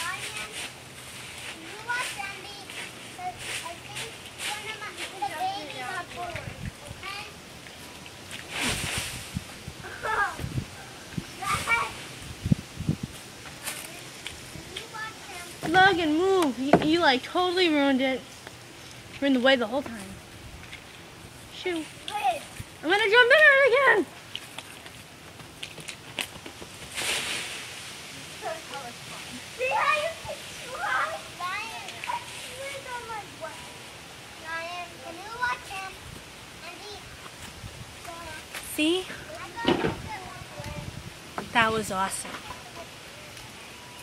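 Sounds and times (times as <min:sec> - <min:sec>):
dry leaves rustling: 0:00.0 - 0:44.0
child's high-pitched calls: 0:11.4 - 0:12.0, 0:29.6 - 0:33.7
dull thumps: 0:16.6 - 0:17.0.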